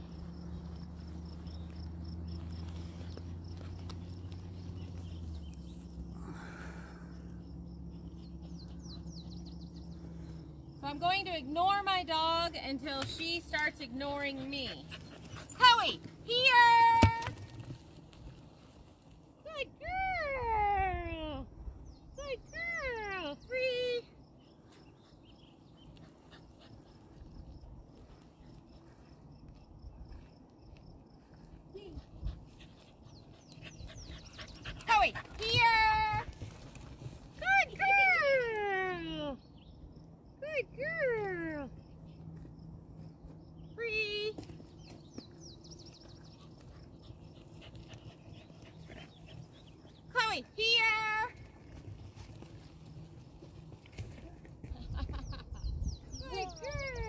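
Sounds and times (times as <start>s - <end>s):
wind rumble on microphone: 19.9s - 22.2s, 54.2s - 57.0s.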